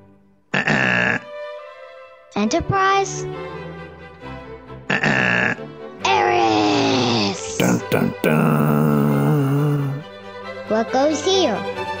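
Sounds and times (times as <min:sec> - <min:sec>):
background music: 0:00.0 - 0:12.0
low pitched cartoon sound: 0:06.1 - 0:10.0.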